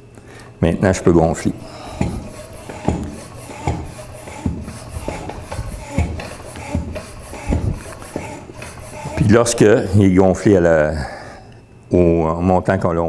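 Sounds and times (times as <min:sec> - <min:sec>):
floor pump strokes: 0:01.3 - 0:10.1.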